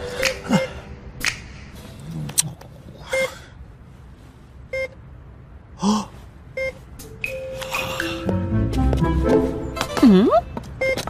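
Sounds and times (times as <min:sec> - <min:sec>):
short electronic beeps: 0:10.4 - 0:11.0.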